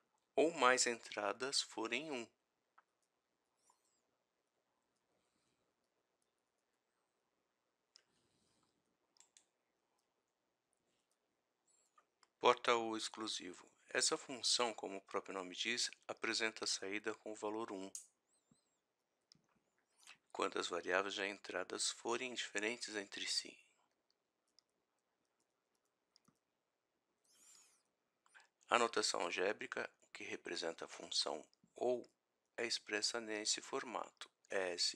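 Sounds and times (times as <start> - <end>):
faint clicks: 7.9 - 10.1, 24.5 - 26.4.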